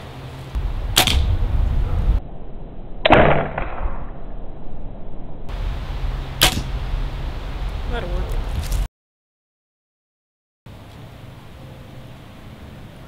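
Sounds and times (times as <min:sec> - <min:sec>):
arrow flying: 0:00.6 - 0:05.6, 0:06.4 - 0:06.8.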